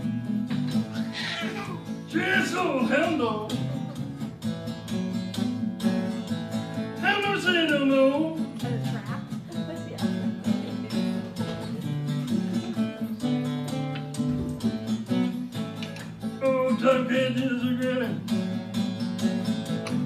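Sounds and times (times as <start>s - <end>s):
fingerpicked acoustic blues guitar: 0.0s - 20.0s
person singing: 1.2s - 3.5s, 16.4s - 18.2s.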